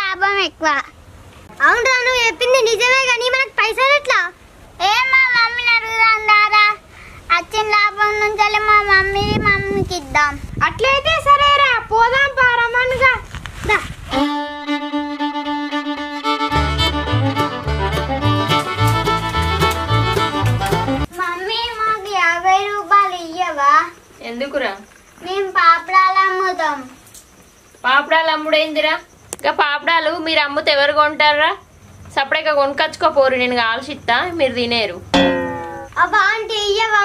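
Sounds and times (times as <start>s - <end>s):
child singing: 4.8s - 10.2s.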